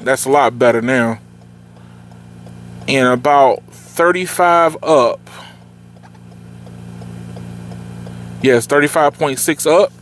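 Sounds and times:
low car cabin hum: 0.0 - 10.0
faint light ticks: 1.4 - 3.0, 5.6 - 8.2.

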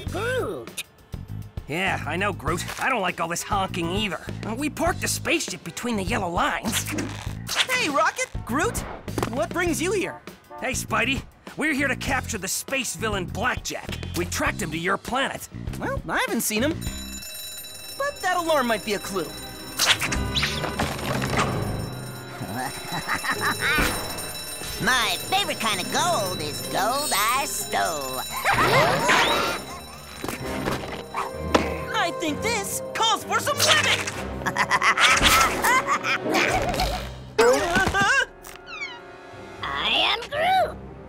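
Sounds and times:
cartoon background music: 0.0 - 41.0
person speaking: 24.7 - 29.7.

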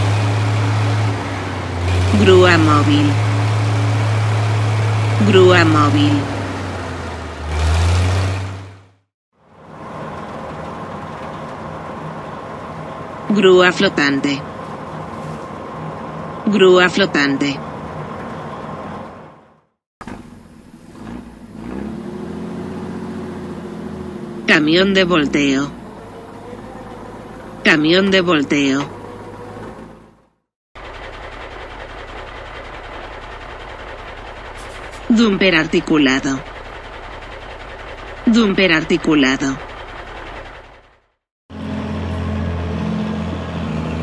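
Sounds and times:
truck engine humming: 0.0 - 44.0.

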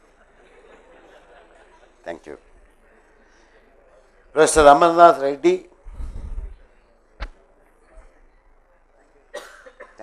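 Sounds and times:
person coughing: 9.3 - 10.0.

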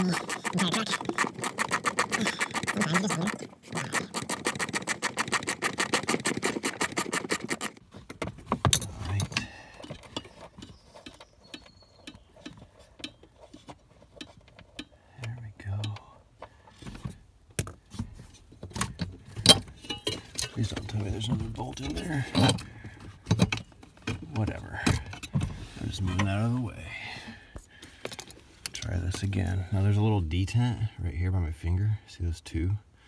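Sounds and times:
parts being handled: 0.0 - 15.0, 15.6 - 26.6, 27.4 - 29.3.

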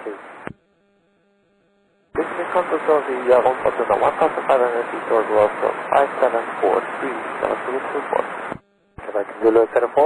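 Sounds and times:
voice over aircraft radio: 2.2 - 8.2.

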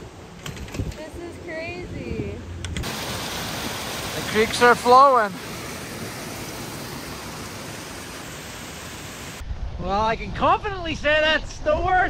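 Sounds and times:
creek rushing: 2.8 - 9.4.

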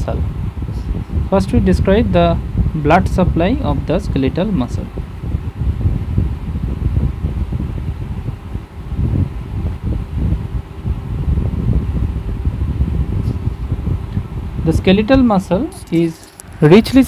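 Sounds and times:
faint steady hum: 0.0 - 17.0
low uneven background rumble: 0.0 - 17.0.

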